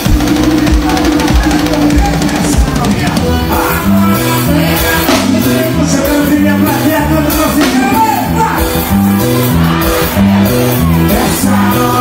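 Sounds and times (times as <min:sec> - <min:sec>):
live band music: 0:00.0 - 0:12.0
stepped bass line: 0:00.0 - 0:12.0.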